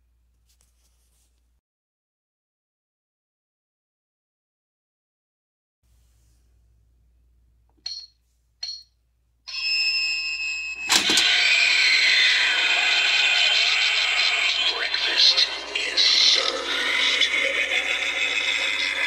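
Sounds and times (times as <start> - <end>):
spooky soundtrack from small speaker: 10.8 - 19.0
recorded voice line: 10.9 - 19.0.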